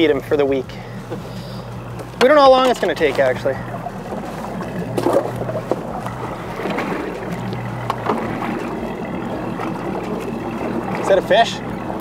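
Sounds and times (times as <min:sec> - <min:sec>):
choppy water around boat: 0:00.0 - 0:12.0
steady low hum: 0:00.0 - 0:12.0
wind: 0:00.0 - 0:12.0
light knocks against boat: 0:01.9 - 0:08.7.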